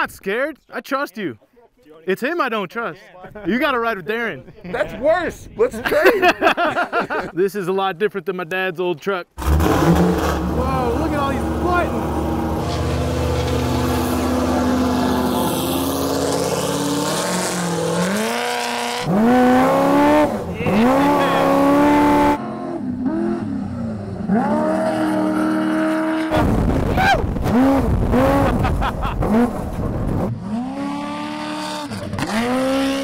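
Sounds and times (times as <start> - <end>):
truck engine revving: 9.4 - 33.0.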